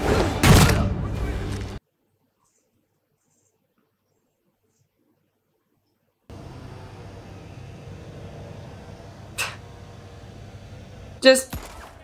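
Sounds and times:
low mechanical hum with hiss: 0:06.3 - 0:11.4.

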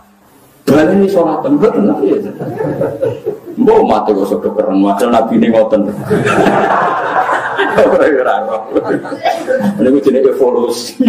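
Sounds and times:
person speaking: 0:00.6 - 0:06.3
chuckling laughter: 0:02.2 - 0:03.6, 0:06.0 - 0:09.8.

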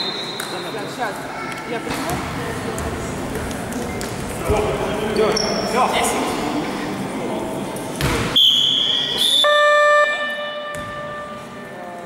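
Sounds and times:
high piercing whistle: 0:00.0 - 0:00.7, 0:08.4 - 0:11.4.

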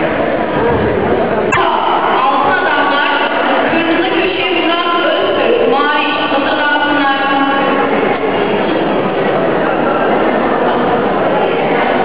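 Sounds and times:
sports hall rushing din: 0:00.0 - 0:12.0.

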